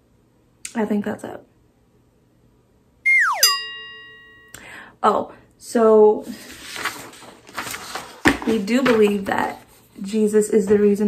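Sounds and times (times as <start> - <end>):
falling slide whistle: 3.1 - 3.8
bright bell-like ding: 3.1 - 4.6.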